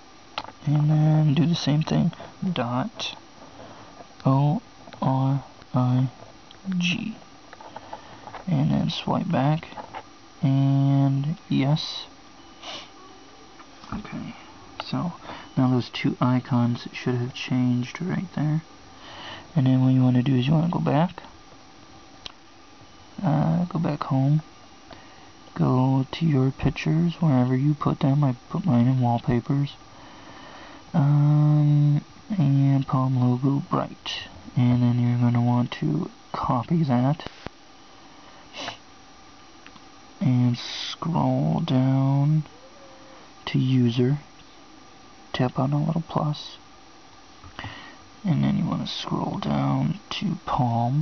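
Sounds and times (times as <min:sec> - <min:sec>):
person breathing: 0:03.5 - 0:04.0, 0:07.6 - 0:08.4, 0:12.6 - 0:13.0, 0:15.2 - 0:15.6, 0:18.9 - 0:19.6, 0:24.9 - 0:25.4, 0:29.9 - 0:30.9, 0:38.0 - 0:38.8, 0:47.6 - 0:48.1
person sniffing: 0:12.6 - 0:13.0, 0:38.4 - 0:38.8.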